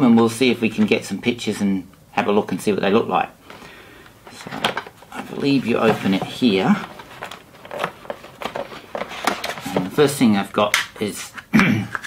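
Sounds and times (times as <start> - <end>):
cardboard box being opened: 4.3 - 10.0.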